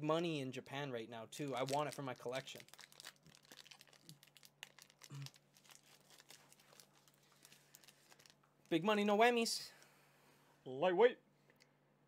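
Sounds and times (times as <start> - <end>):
foil wrapper crinkling: 1.4 - 8.8.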